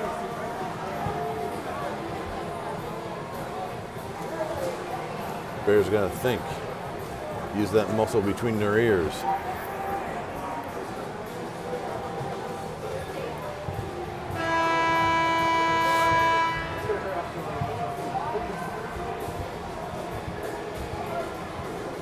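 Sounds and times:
voices: 0.0 - 22.0
scoreboard horn: 14.3 - 17.4.

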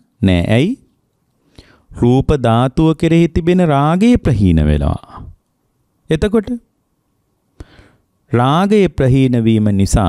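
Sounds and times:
man preaching: 0.2 - 0.8, 2.0 - 5.3, 6.1 - 6.6, 8.3 - 10.0.

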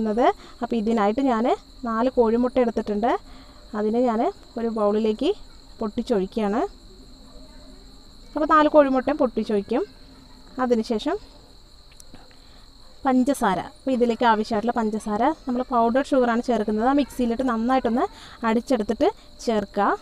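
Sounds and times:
cricket chirping: 0.0 - 20.0.

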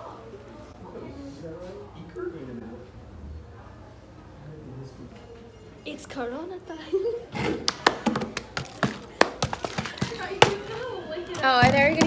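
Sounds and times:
plastic bottle crackling: 7.9 - 12.0.

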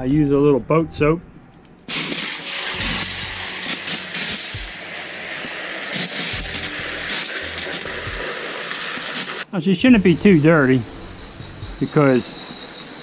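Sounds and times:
hose spraying water: 1.9 - 13.0.

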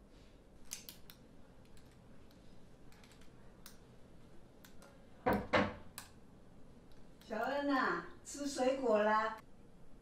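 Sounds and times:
faint laptop keyboard typing: 0.6 - 3.9.

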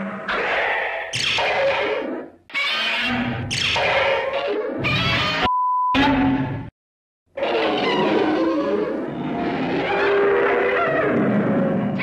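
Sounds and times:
censor bleep: 5.4 - 6.4.

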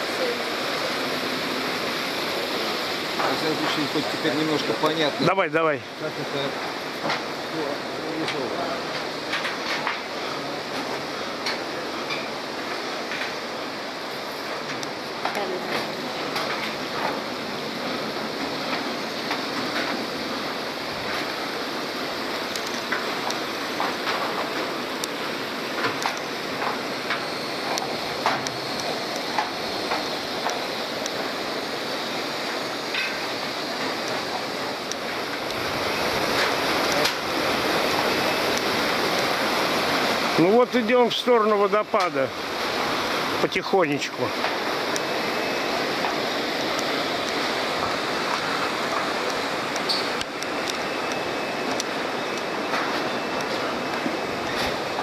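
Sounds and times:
river rushing over rapids: 0.0 - 55.0.

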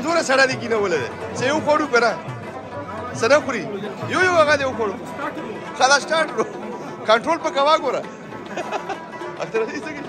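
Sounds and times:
low room babble: 0.0 - 10.0
men chatting: 0.0 - 10.0.

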